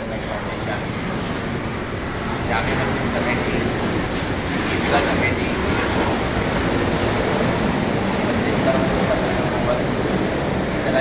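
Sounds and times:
loud rushing noise: 0.0s - 11.0s.

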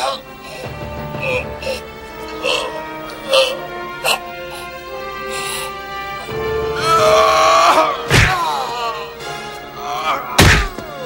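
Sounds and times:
action music score: 0.0s - 11.0s
heavy punch sound effect: 8.1s - 8.4s, 10.4s - 10.8s.

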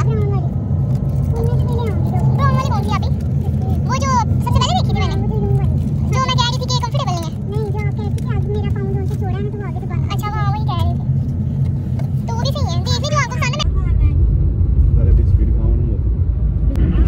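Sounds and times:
voices: 0.0s - 14.2s
car cabin hum: 0.0s - 14.4s
deep road rumble: 0.0s - 17.0s.

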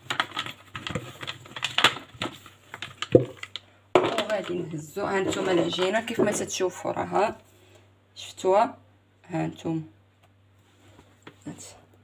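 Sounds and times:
container tapping and clicking: 3.0s - 4.6s.

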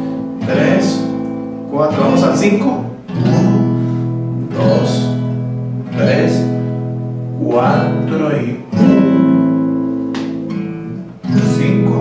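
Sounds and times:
classical guitar chord strummed: 0.0s - 12.0s.

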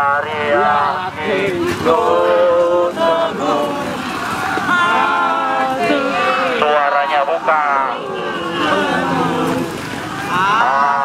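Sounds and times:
group chanting and singing: 0.0s - 11.0s.

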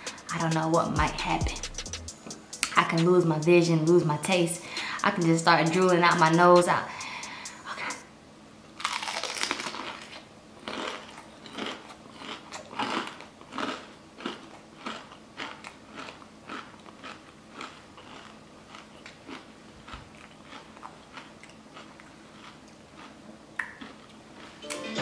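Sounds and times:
crunchy bite: 8.8s - 24.5s
crunchy chewing: 8.8s - 24.6s.

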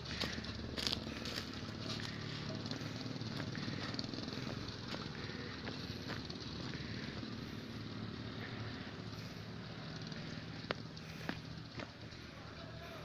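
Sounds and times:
motorbike engine running: 0.0s - 13.0s.

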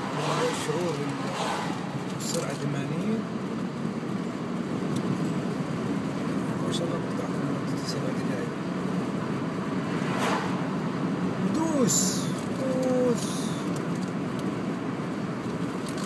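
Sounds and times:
car interior road and engine noise: 0.0s - 16.0s.

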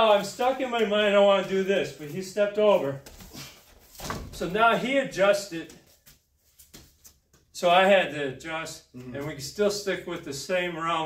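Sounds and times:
man talking: 0.0s - 3.1s, 4.4s - 5.8s, 7.6s - 11.0s.

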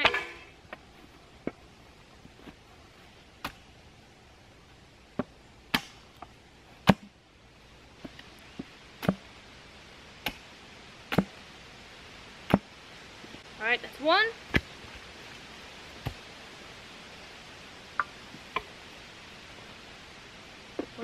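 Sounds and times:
hatchet chopping wood: 5.2s - 6.1s, 6.8s - 7.1s, 9.0s - 9.3s, 10.2s - 10.4s, 11.1s - 11.4s, 12.5s - 12.7s.

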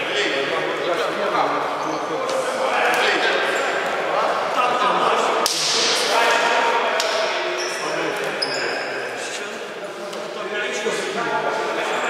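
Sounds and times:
indistinct voices echoing: 0.0s - 12.0s.

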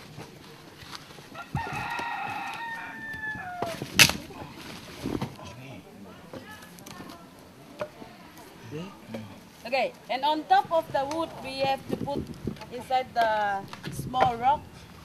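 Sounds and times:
rooster crowing: 1.3s - 4.0s.

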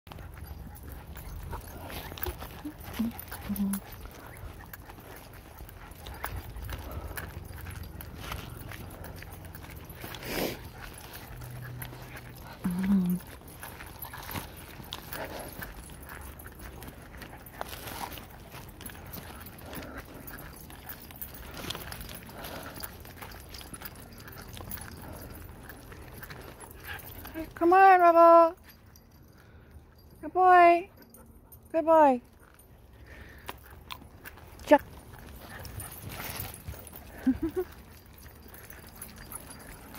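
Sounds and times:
footsteps on gravel trail: 0.1s - 27.5s, 32.5s - 39.9s.

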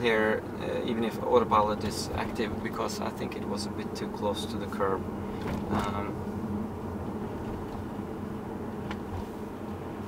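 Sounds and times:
faint steady hum: 0.0s - 10.0s
road and tyre rumble: 0.0s - 10.0s.

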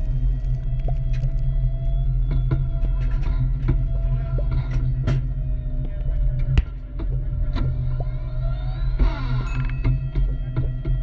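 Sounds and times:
rising whine: 0.0s - 11.0s
tank engine rumbling: 0.0s - 11.0s.

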